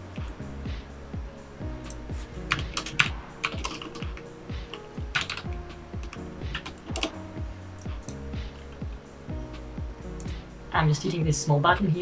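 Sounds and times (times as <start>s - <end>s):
background music: 0.0s - 12.0s
keyboard keys clicking: 1.8s - 7.2s.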